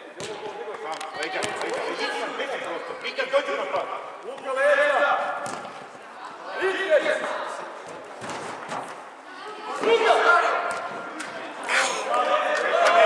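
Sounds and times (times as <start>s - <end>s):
people shouting in echoing hall: 9.3s - 13.0s.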